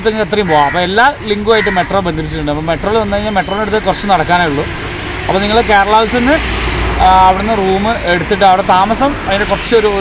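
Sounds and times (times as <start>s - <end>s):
man talking: 0.0s - 10.0s
road traffic rumble: 0.0s - 10.0s.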